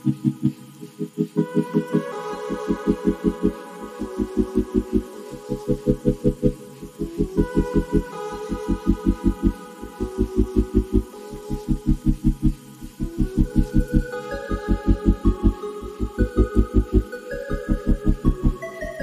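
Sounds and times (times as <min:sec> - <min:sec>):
held synth chords: 0:00.0 - 0:19.0
pulsing bass: 0:00.0 - 0:19.0.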